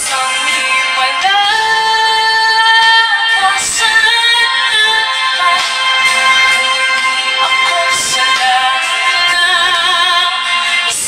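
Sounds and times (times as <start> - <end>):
instrumental backing music: 0.0 - 11.0
person singing with vibrato: 0.0 - 11.0.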